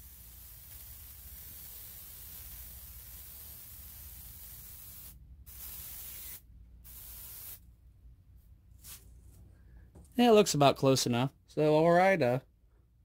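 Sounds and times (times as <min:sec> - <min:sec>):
airbrush spraying hiss: 0:00.0 - 0:07.6.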